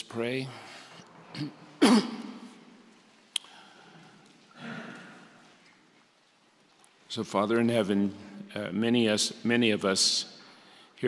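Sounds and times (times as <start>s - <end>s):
man clearing his throat: 1.3s - 2.6s.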